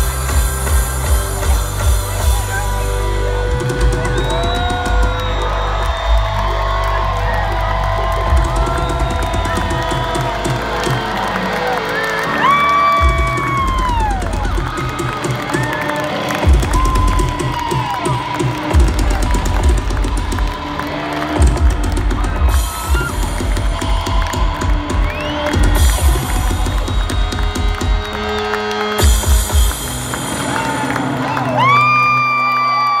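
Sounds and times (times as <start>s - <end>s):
rock band playing live: 0.0s - 32.9s
crowd cheering and whooping: 0.0s - 33.0s.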